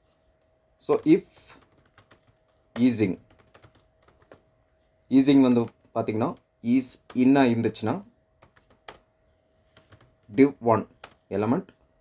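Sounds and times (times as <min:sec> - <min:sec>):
person talking: 0:00.8 - 0:01.7, 0:02.7 - 0:03.3, 0:05.1 - 0:08.1, 0:10.3 - 0:11.8.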